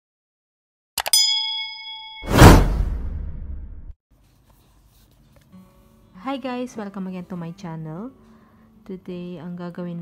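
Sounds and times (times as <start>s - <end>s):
bright bell ding: 1.0s - 2.6s
whoosh: 2.2s - 4.0s.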